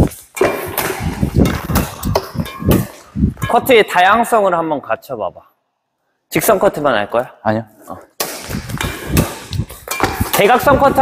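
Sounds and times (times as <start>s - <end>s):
rackets hitting shuttlecock: 0.1s - 3.6s, 8.2s - 11.0s.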